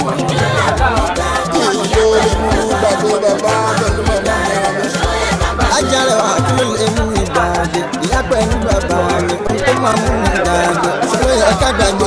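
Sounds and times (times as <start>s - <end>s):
music with steady low beat: 0.0s - 12.0s.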